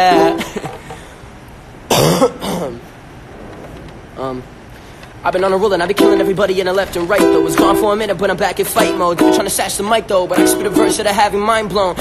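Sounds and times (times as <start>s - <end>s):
man coughing: 0.3s - 1.0s, 1.9s - 2.8s.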